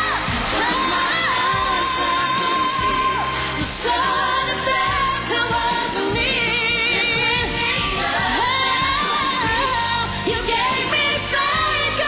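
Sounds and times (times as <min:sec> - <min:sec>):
band accompaniment: 0:00.0 - 0:12.0
woman singing pop ballad: 0:00.0 - 0:12.0.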